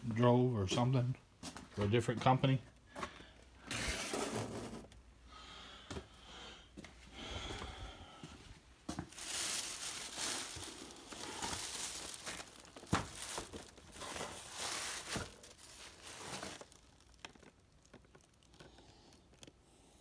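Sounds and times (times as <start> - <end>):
boxed items knocking: 9.0 - 16.6
plastic bag crinkling: 9.0 - 19.5.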